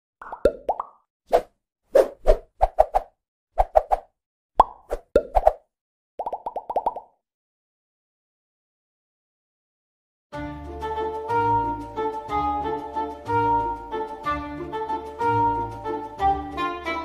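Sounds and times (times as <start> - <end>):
cartoon pops rising in pitch: 0.2 - 1.0, 4.6 - 5.6, 6.2 - 7.2.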